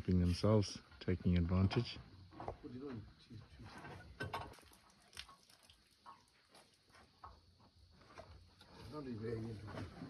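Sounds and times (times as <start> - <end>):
elephants crunching food: 3.8 - 8.8.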